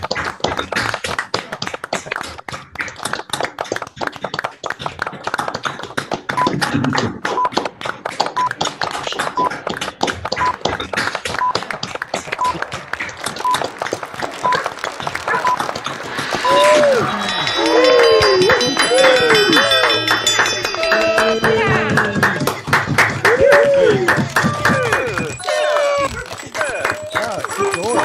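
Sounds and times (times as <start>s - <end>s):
group applauding: 0.0s - 28.0s.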